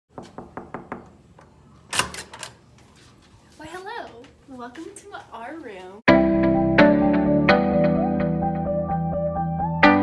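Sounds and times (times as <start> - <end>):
knuckles knocking on door: 0.1 - 1.1.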